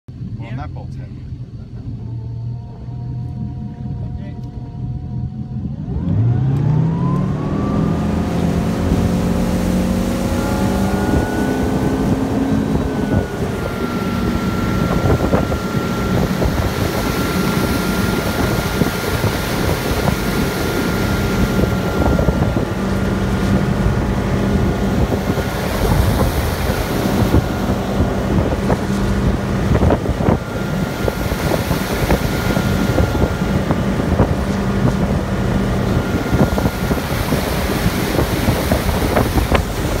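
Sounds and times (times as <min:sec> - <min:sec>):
boat engine running: 0:00.0 - 0:40.0
water rushing from wake: 0:04.6 - 0:40.0
wind buffeting microphone: 0:06.9 - 0:40.0.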